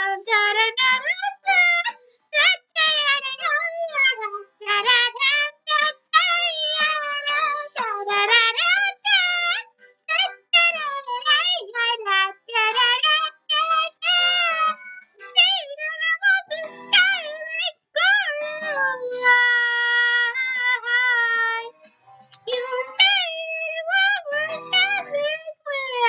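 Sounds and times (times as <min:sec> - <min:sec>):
high-pitched voice singing: 0:00.0 - 0:26.0.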